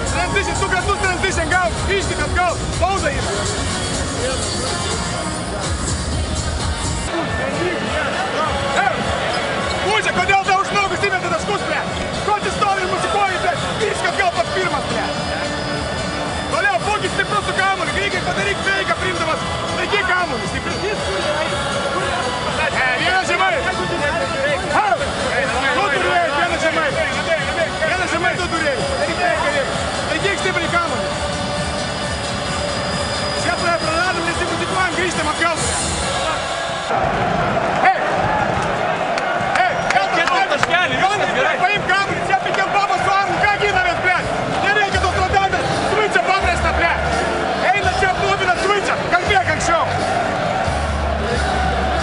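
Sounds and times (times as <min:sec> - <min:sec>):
man's raised voice: 0:00.0 - 0:03.5
man speaking instructions: 0:00.0 - 0:05.8, 0:09.8 - 0:15.4, 0:16.5 - 0:31.1, 0:33.4 - 0:36.4, 0:39.6 - 0:50.0
crowd din in arena: 0:00.0 - 0:52.0.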